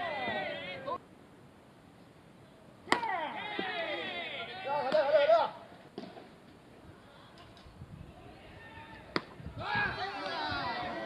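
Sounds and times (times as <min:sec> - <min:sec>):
voices shouting: 0:00.0 - 0:01.0, 0:02.9 - 0:05.6, 0:08.2 - 0:11.0
bat cracking a ball: 0:02.9 - 0:03.8, 0:09.1 - 0:09.4.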